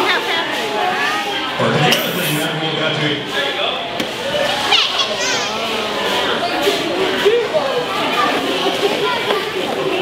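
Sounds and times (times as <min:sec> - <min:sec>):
children and adults chattering: 0:00.0 - 0:10.0
short high squeak: 0:01.9 - 0:02.4.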